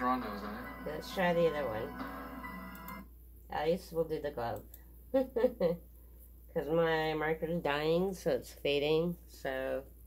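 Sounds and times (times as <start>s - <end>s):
woman speaking: 0.0s - 2.0s, 3.5s - 5.8s, 6.5s - 10.0s
music from laptop speakers: 0.0s - 3.0s.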